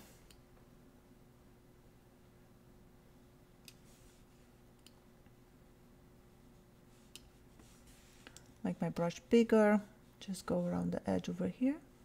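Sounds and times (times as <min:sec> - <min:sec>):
faint steady hum: 0:00.0 - 0:12.0
computer mouse clicks: 0:03.6 - 0:03.9, 0:04.8 - 0:05.0, 0:07.1 - 0:07.3.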